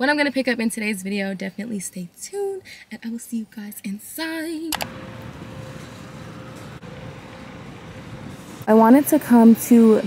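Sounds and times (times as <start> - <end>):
distant traffic hum: 4.8 - 10.0.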